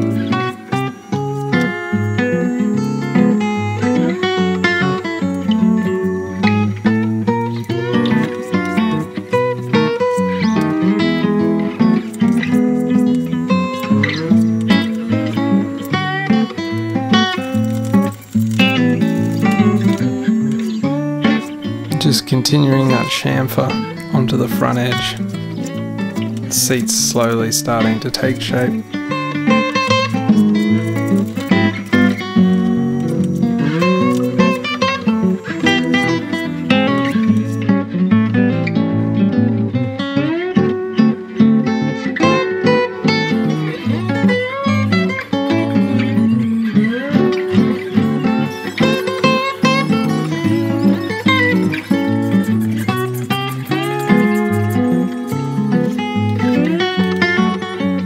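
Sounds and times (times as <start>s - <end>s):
plucked guitar melody: 0.0s - 58.0s.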